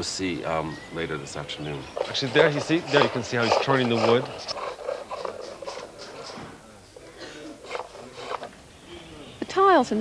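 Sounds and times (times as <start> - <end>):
chisel scraping wood on lathe: 1.8 - 6.6, 7.5 - 8.6.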